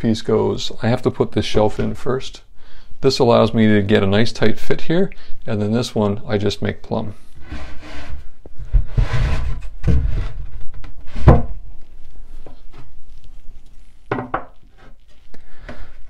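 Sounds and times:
wood scraping: 0:07.2 - 0:11.7, 0:12.3 - 0:16.0.

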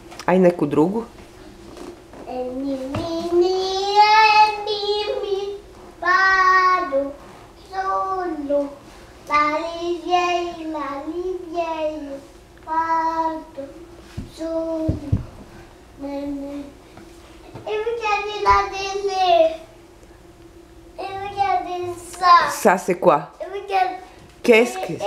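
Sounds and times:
small child singing: 0:02.3 - 0:15.2, 0:17.5 - 0:19.7, 0:21.0 - 0:22.5.

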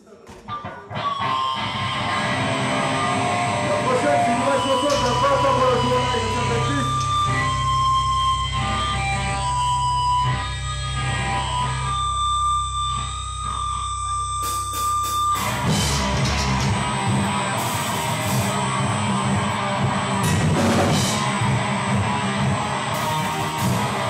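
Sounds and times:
distorted electric guitar: 0:00.4 - 0:24.0
amp hum: 0:01.1 - 0:24.0.

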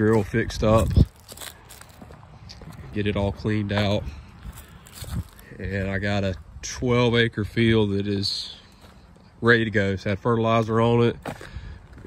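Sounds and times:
footsteps on dirt and dry leaves: 0:00.0 - 0:09.4.

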